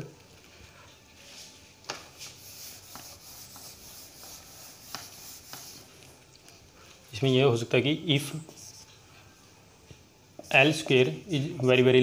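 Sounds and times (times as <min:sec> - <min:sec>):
duster scrubbing whiteboard: 0:02.1 - 0:06.2
duster tapping board: 0:02.8 - 0:05.8.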